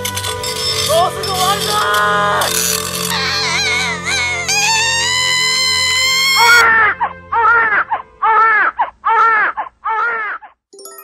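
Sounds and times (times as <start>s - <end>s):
newborn baby crying: 3.0s - 10.6s
woman screaming: 3.1s - 10.4s.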